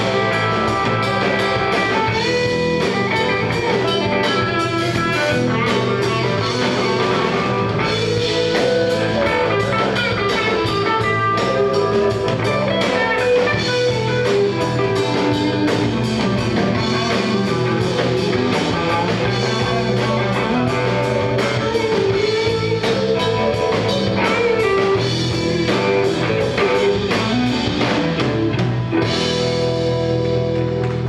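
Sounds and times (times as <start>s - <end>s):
bass guitar: 0.0s - 31.0s
drum kit: 0.0s - 31.0s
electric guitars: 0.0s - 31.0s.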